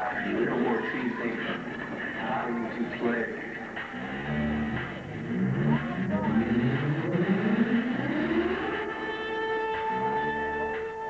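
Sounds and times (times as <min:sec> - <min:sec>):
music: 0:00.0 - 0:11.0
rising pitched sound effect: 0:03.8 - 0:11.0.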